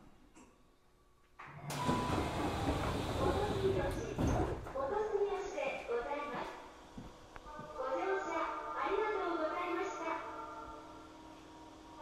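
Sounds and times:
station platform noise: 1.3 - 12.0
train doors sliding open: 1.4 - 4.6.

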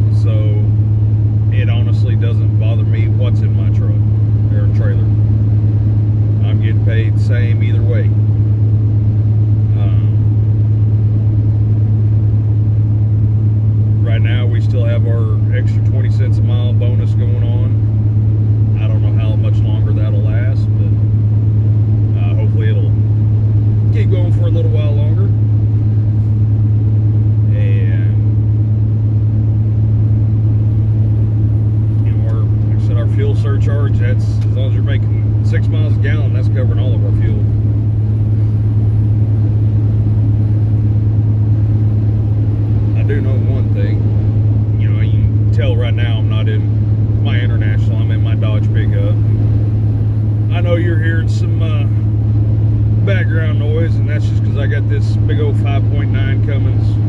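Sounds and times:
engine and road drone: 0.0 - 57.0.

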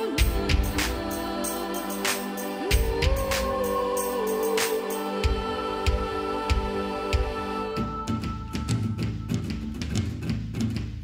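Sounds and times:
drums playing steady beat: 0.0 - 7.5.

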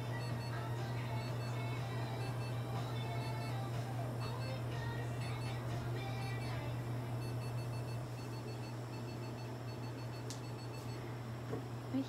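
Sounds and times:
low electrical hum: 0.0 - 12.0
rapid high-pitched beeps: 1.2 - 3.7, 5.2 - 5.6, 6.2 - 11.0.

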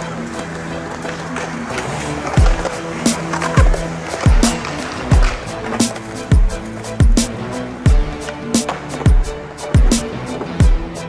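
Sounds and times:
skateboard wheels rolling on concrete: 0.0 - 11.0
music with kick drum and snare: 2.4 - 11.0.

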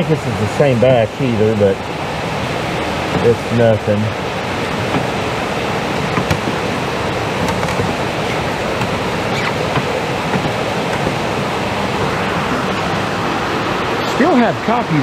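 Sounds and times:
heavy rain on a metal roof: 0.0 - 15.0.

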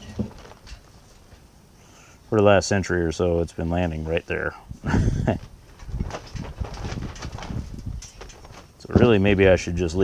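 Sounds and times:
metal parts clicking and knocking: 5.8 - 8.6.

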